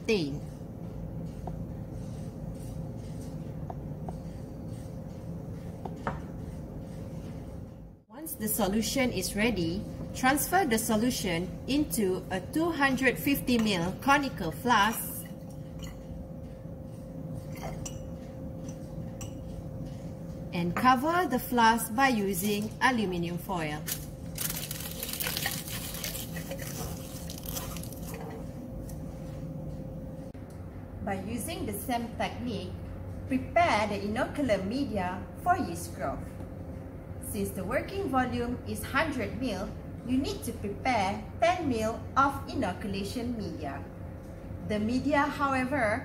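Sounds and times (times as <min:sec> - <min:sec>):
low background hum: 0:00.0 - 0:46.0
aluminium foil crinkling: 0:23.8 - 0:28.3.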